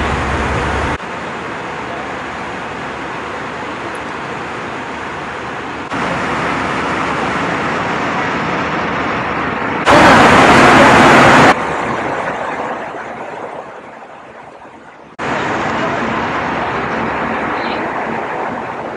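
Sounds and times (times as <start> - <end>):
airliner cabin noise: 0.0 - 18.9.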